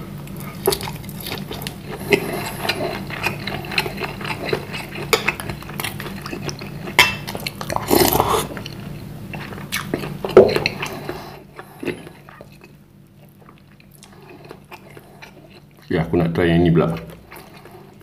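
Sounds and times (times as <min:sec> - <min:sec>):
person chewing: 0:00.2 - 0:16.0, 0:16.9 - 0:18.0.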